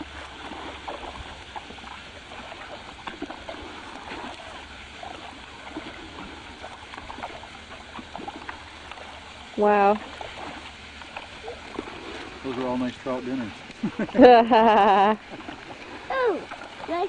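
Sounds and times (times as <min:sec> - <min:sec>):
fish splashing and slurping: 0:00.0 - 0:17.0
steady low hum: 0:00.0 - 0:17.0.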